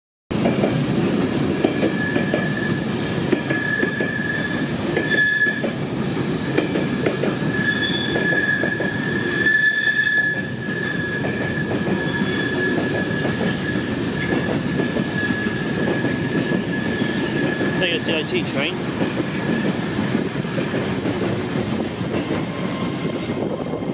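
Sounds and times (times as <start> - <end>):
train wheels rumbling on rails: 0.3 - 23.9
high-pitched wheel squeal: 1.9 - 2.9, 3.5 - 5.7, 7.4 - 17.8.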